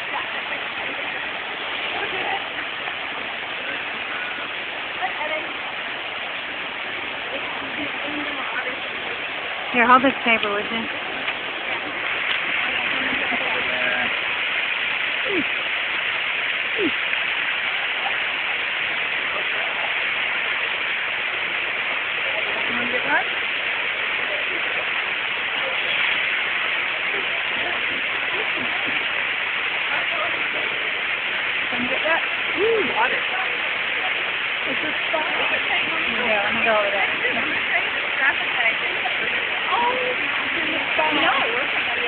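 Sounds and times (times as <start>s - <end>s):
faint voices: 0.0s - 42.0s
water rushing down waterfall: 0.0s - 42.0s.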